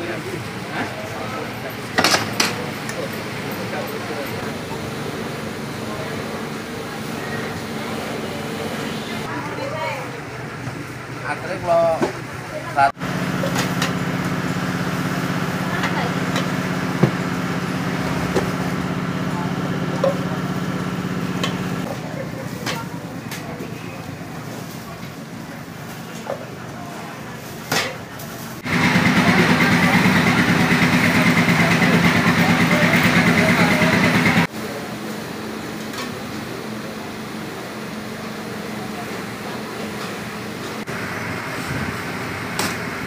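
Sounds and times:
low mechanical hum: 0.0 - 43.0
small engine idling: 12.9 - 22.4, 28.6 - 34.5.

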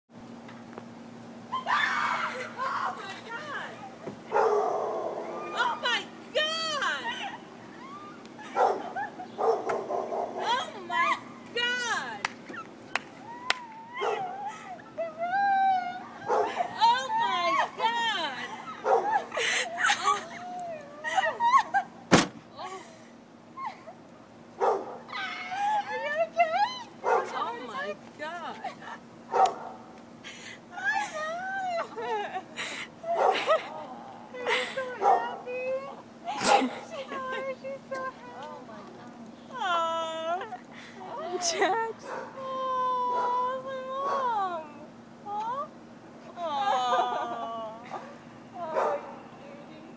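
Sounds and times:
woman shrieking: 1.5 - 3.6, 5.4 - 9.1, 13.2 - 21.8, 25.1 - 26.9
laughter: 8.4 - 9.4, 18.4 - 21.9, 31.8 - 34.9, 46.6 - 47.6
woman crying in whimpering sobs: 13.2 - 21.9, 22.6 - 24.0, 25.1 - 26.8, 30.3 - 35.0, 46.4 - 47.8.

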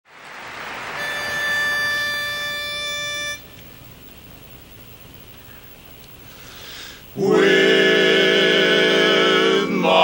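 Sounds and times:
faint hiss: 0.1 - 10.0
steady pitched note: 1.0 - 3.6.

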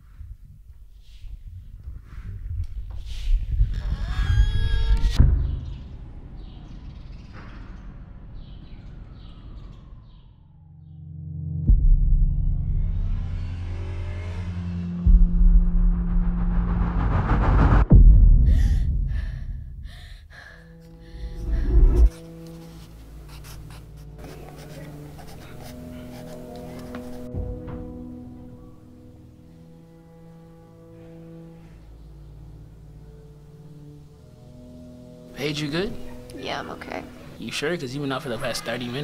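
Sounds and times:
deep rumble: 1.4 - 10.0, 11.3 - 22.2
low hum: 1.5 - 22.5
pencil scratching on paper: 22.1 - 27.3.

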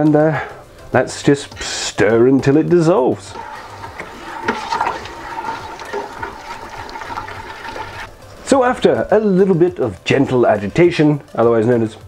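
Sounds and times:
spoon scraping metal pot: 3.2 - 8.1
liquid swirling: 3.2 - 8.4.

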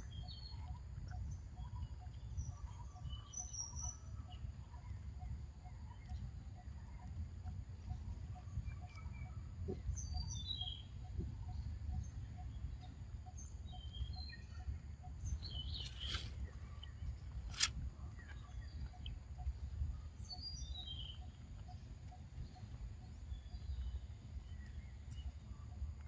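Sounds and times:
birds chirping: 0.0 - 25.8
low background rumble: 0.0 - 26.0
faint repeated pip: 15.6 - 17.8
brief rustle: 15.7 - 16.5, 17.4 - 17.8
sharp click: 17.4 - 17.8.

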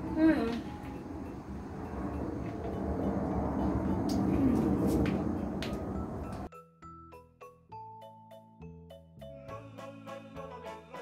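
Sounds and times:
low outdoor rumble: 0.0 - 6.5.

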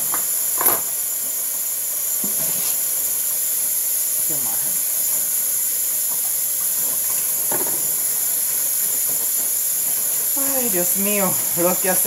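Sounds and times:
tap running into sink: 6.1 - 9.6.

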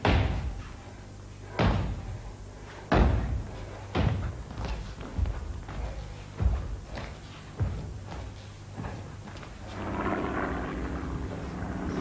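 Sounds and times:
heavy echoing thuds: 0.0 - 0.7, 1.5 - 12.0.

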